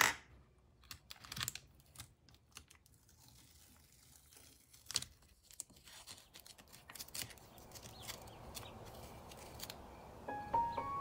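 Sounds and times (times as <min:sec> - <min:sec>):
paper rustling: 0:01.0 - 0:09.8.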